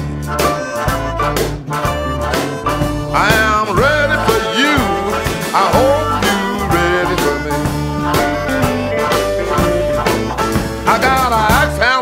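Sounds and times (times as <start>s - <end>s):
bass riff: 0.0s - 12.0s
electric blues band playing: 0.0s - 12.0s
harmonica bending notes: 0.0s - 12.0s
person singing: 2.4s - 12.0s.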